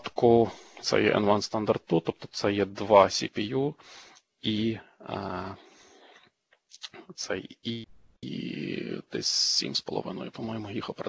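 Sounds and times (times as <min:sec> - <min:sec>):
faint mouth noises: 0:06.8 - 0:09.1
man's drawn-out hesitation sound: 0:06.8 - 0:11.0.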